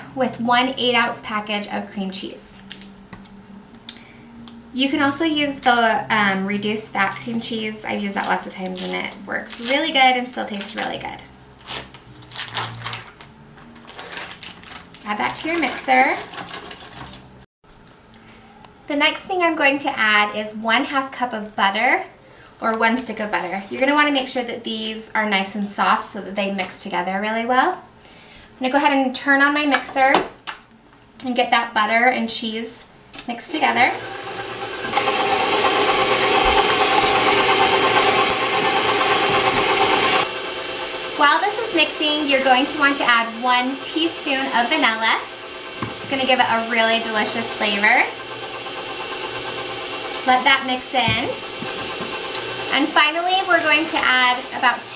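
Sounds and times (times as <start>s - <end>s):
foil wrapper crinkling: 11.6s - 15.2s
stand mixer motor hum: 33.9s - 54.9s.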